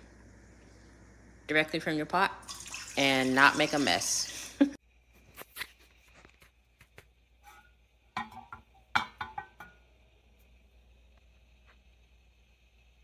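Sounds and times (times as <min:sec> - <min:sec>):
metal cookware clinking: 0:07.4 - 0:09.8.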